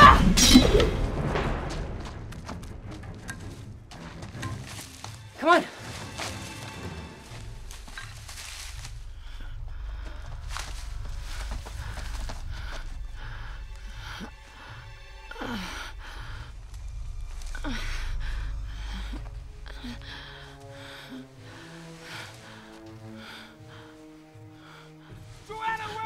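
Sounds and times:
low rumble: 0.0s - 4.1s, 7.4s - 21.4s
faint film score: 0.0s - 26.0s.

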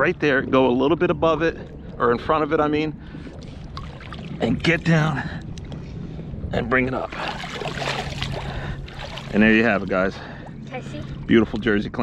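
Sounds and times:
water splashing off a rake: 7.1s - 9.4s.

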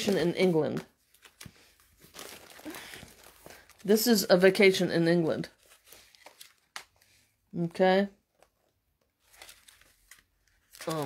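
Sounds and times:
paper page turning: 0.0s - 4.0s, 5.4s - 7.1s, 9.2s - 11.0s.

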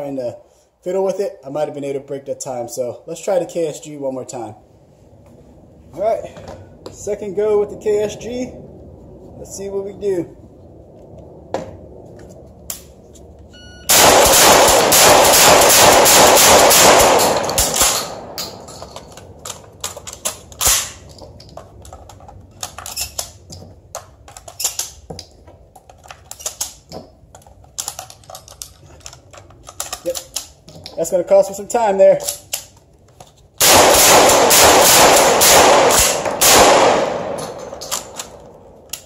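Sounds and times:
shotgun firing rapidly: 13.9s - 18.3s, 33.6s - 37.6s
shells loaded by hand clicking: 16.8s - 31.0s, 35.9s - 39.0s.

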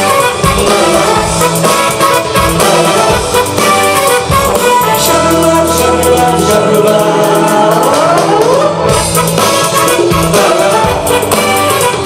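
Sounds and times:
live band with singing: 0.0s - 12.0s.

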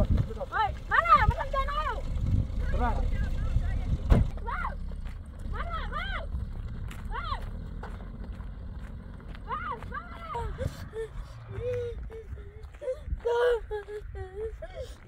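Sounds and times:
low rumble: 0.0s - 15.0s
voices shouting: 4.4s - 6.4s, 9.4s - 12.2s.

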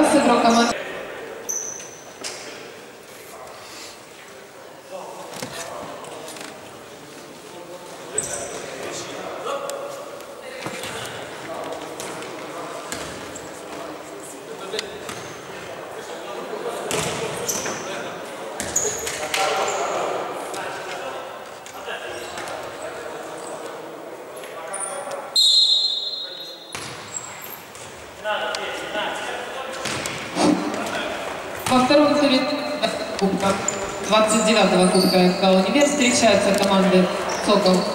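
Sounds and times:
shoe squeaks on wooden floor: 1.5s - 2.2s, 18.7s - 19.9s, 32.9s - 35.5s.

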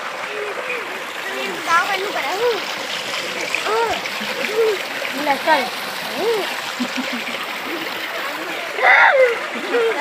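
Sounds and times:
water gushing from a pipe: 0.0s - 10.0s.

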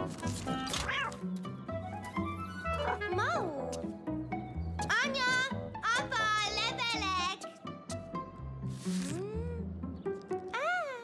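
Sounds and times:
light background music: 0.0s - 11.0s
cartoon cat meowing: 0.8s - 1.2s.

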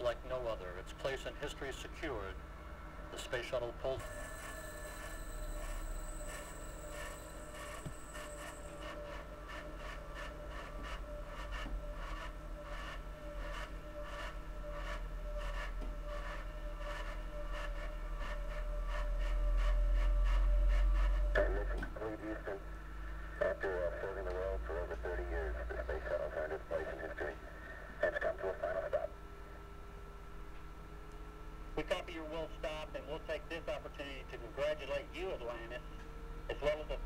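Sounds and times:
faint whine and crackle: 0.0s - 37.0s.

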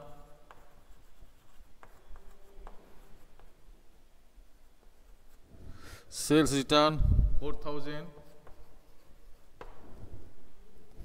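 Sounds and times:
chalk scratching on blackboard: 0.0s - 3.9s, 4.5s - 6.2s, 8.1s - 10.3s.

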